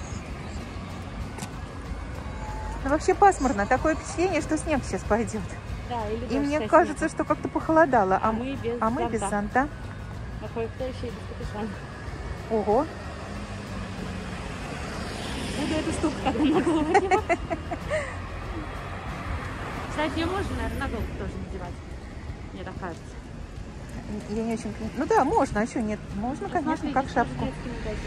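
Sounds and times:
street traffic rumble: 0.0s - 28.0s.

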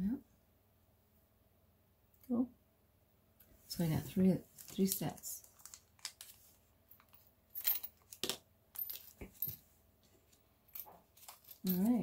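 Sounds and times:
metal clasps clinking: 6.9s - 9.6s, 10.6s - 12.0s.

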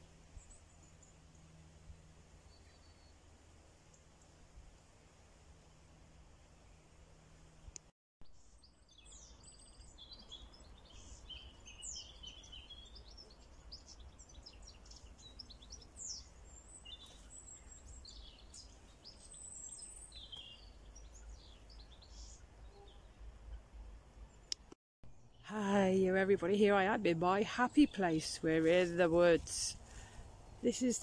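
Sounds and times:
small birds chirping and whistling: 8.6s - 23.1s.

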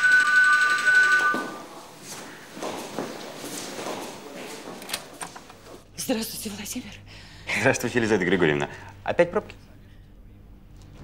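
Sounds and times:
electronic doorbell two-note tone: 0.0s - 1.6s.

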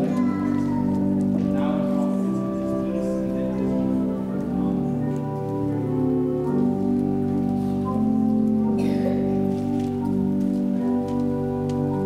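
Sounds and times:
church organ playing hymn: 0.0s - 12.0s.

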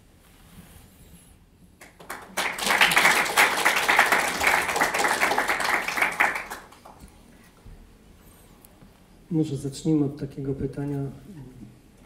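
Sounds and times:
audience applauding: 1.8s - 7.1s.

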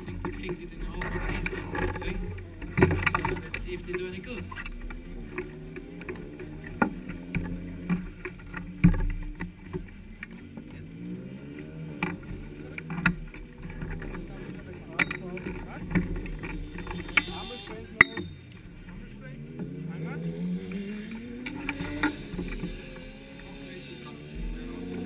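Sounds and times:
voices: 0.0s - 25.0s
harness buckles clicking: 12.0s - 18.7s, 20.6s - 25.0s.

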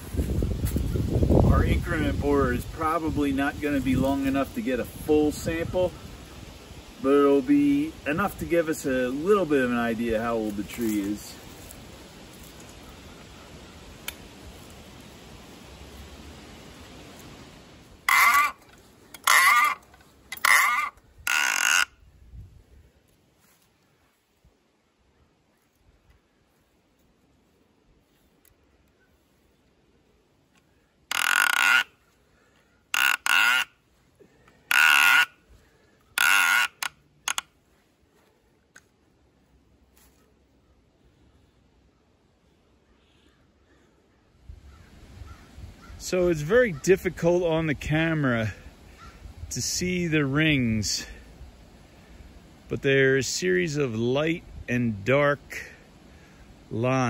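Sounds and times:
crow cawing: 18.1s - 18.6s, 20.4s - 21.9s, 31.1s - 31.9s, 32.9s - 33.7s, 34.7s - 35.3s, 36.2s - 37.4s.

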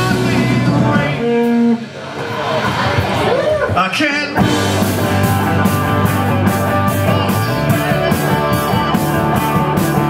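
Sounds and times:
live rock band with electric guitars: 0.0s - 10.0s
ringing guitar: 4.4s - 10.0s.

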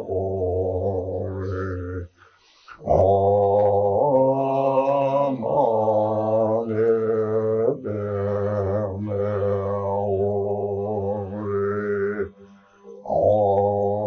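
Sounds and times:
deep male voice chanting: 0.0s - 14.0s.

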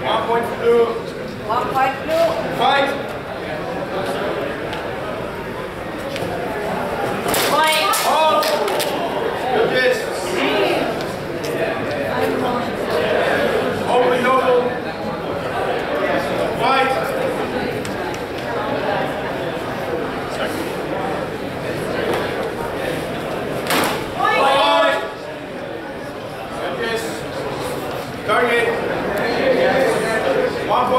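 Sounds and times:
murmur of onlookers talking: 0.0s - 30.9s.

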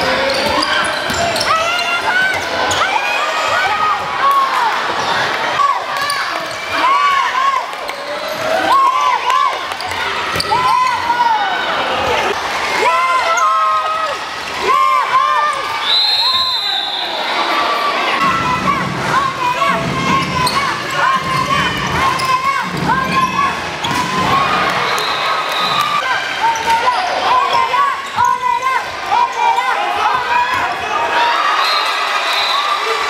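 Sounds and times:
shoes squeaking on court: 0.0s - 2.9s
murmur of crowd voices: 0.0s - 33.0s.

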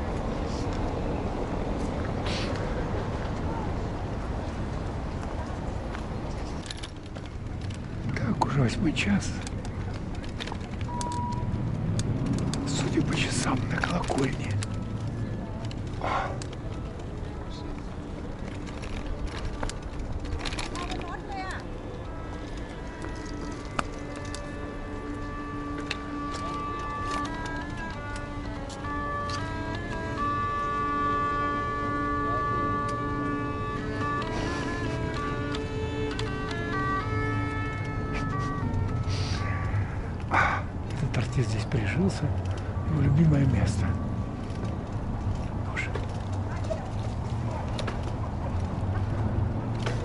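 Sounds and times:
hurdy-gurdy playing: 12.2s - 46.3s.

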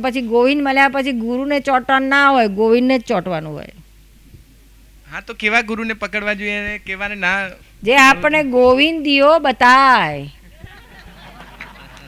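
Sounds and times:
woman speaking into a microphone: 0.0s - 3.8s, 7.8s - 10.4s.

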